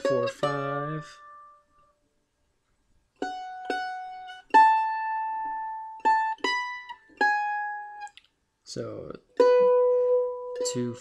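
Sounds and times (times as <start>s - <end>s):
mandolin picked melody: 0.0s - 2.0s, 3.1s - 8.2s, 8.8s - 11.0s.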